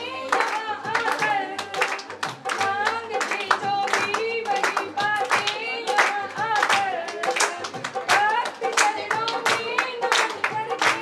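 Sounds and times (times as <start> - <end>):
audience clapping along: 0.0 - 11.0
person singing devotional song: 0.0 - 11.0.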